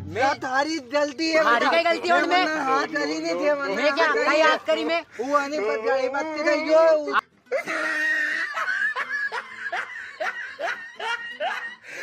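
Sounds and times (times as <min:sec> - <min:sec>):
person laughing: 0:07.5 - 0:12.0.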